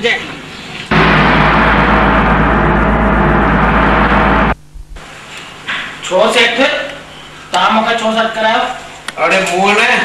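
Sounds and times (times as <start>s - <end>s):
loud crash-like din: 0.9s - 4.6s
deep hum: 0.9s - 5.1s.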